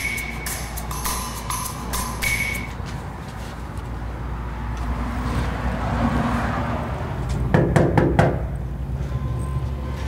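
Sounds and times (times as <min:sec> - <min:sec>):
knocking on a door: 0:07.5 - 0:08.4.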